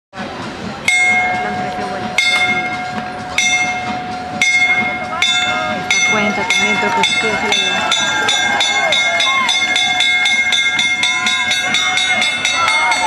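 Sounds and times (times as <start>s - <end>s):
voices: 0.2s - 13.0s
lap bell clanging: 0.9s - 13.0s.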